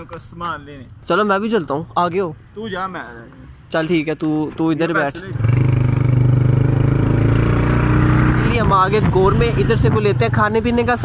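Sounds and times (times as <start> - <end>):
motorcycle engine running: 5.4 - 11.0.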